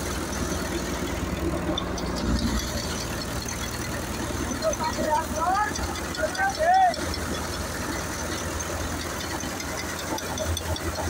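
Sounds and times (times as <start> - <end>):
tractor engine running under load: 0.0 - 11.0.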